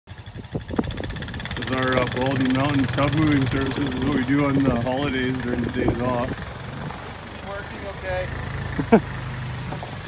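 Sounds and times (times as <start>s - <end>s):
engine running under load: 0.1s - 10.0s.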